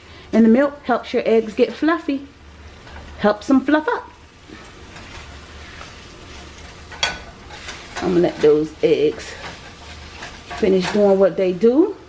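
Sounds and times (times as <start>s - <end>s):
eggs sizzling in a frying pan: 0.0s - 12.0s.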